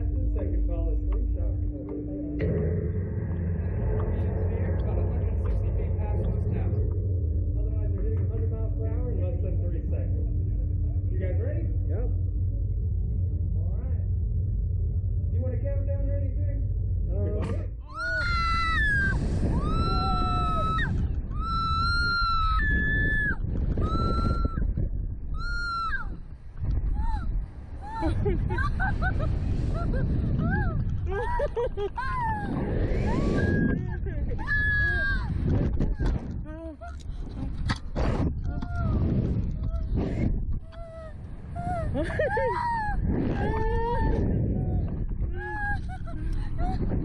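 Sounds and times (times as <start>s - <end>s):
wind on microphone: 0.0s - 47.0s
people screaming and laughing: 17.8s - 24.7s, 26.9s - 36.2s, 40.7s - 47.0s
riders screaming: 17.9s - 24.6s.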